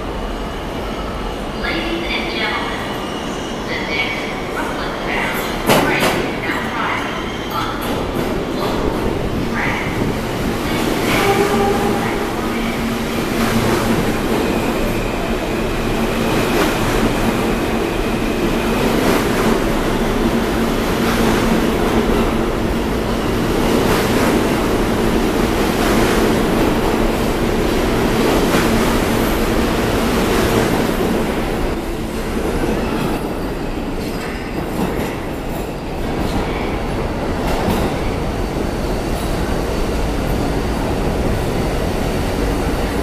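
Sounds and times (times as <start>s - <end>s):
subway train rail rumble: 0.0s - 43.0s
rail clacks: 4.7s - 43.0s.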